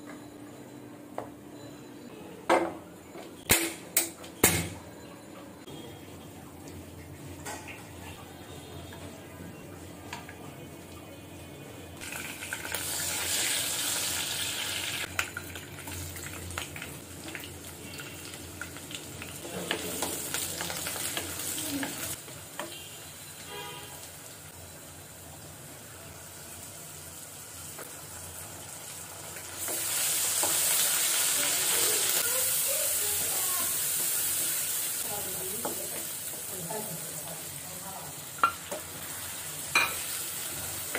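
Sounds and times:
onions sizzling in hot oil: 12.0s - 40.9s.

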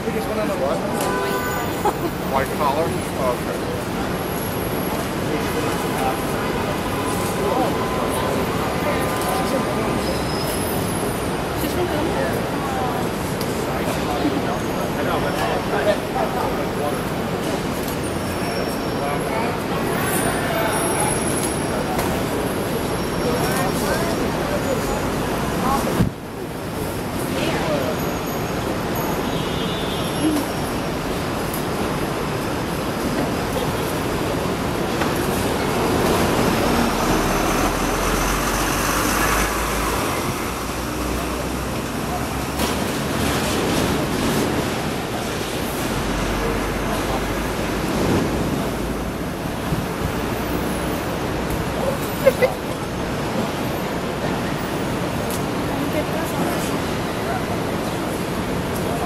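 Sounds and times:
city street noise: 0.0s - 59.0s.

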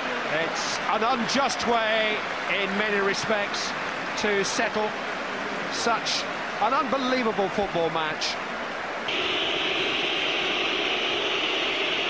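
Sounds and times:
stadium crowd din: 0.0s - 12.0s.

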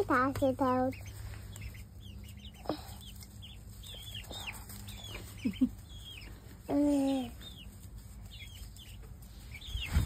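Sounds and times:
chickens chirping: 0.0s - 10.0s.

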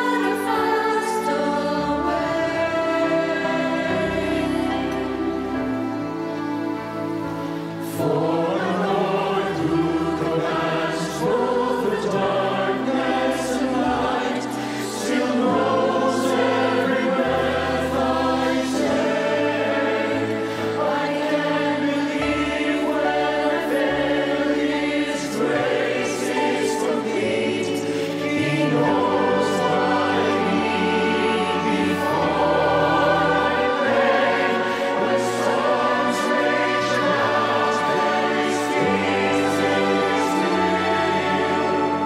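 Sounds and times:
mixed choir singing in harmony: 0.0s - 42.0s
sustained instrumental accompaniment: 0.0s - 42.0s.

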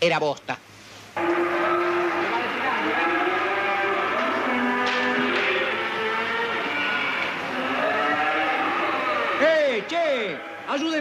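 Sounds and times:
cattle mooing: 1.2s - 10.8s.

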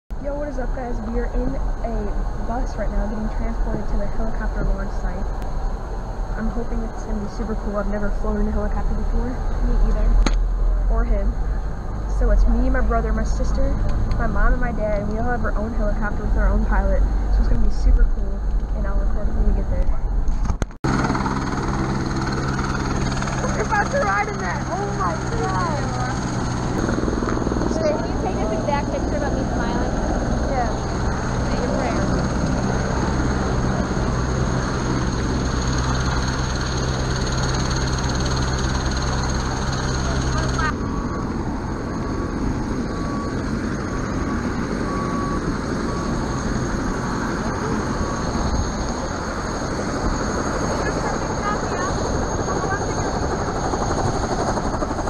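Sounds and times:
helicopter engines humming: 0.1s - 55.0s
low vehicle rumble: 0.1s - 55.0s
open-air noise: 0.1s - 55.0s
voices: 0.2s - 5.5s, 6.3s - 20.2s, 20.9s - 55.0s.

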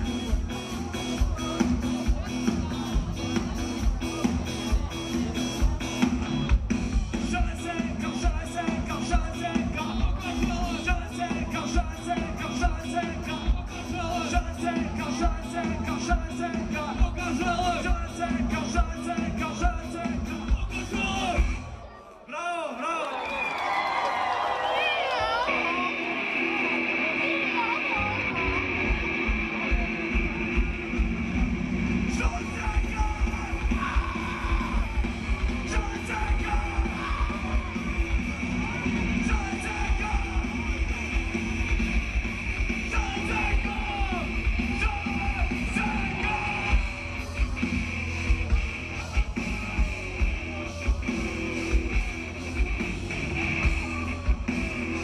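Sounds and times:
rock band playing: 0.0s - 21.9s, 25.1s - 55.0s
voices in crowd: 0.0s - 55.0s.

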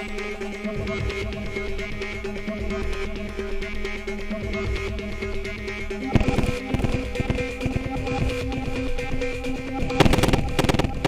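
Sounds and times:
glitchy electronic music: 0.0s - 11.0s
fast dense clicks: 6.1s - 11.0s.

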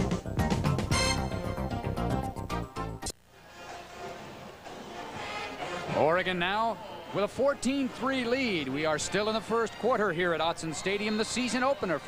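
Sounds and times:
faint stadium music: 0.0s - 12.0s
crowd noise: 3.4s - 12.0s.

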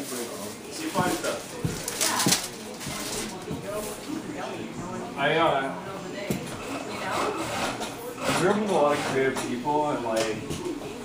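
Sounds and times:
heeled footsteps on hard floor: 0.9s - 3.8s.

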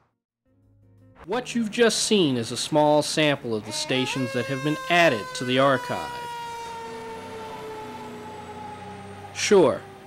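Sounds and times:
fire engine siren: 3.7s - 10.0s.

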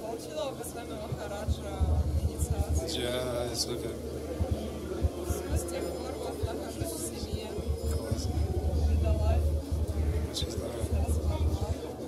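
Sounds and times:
people talking faintly: 0.0s - 12.0s.

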